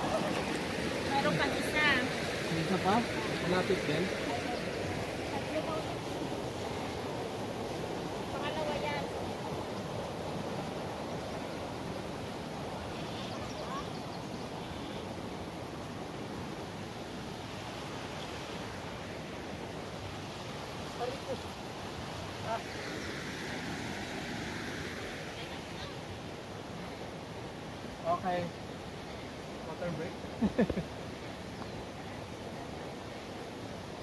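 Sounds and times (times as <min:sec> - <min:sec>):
steady outdoor rushing noise: 0:00.0 - 0:13.8.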